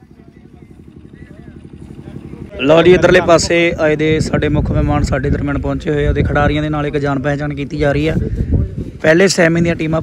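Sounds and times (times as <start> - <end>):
engine idling: 0.0 - 8.7.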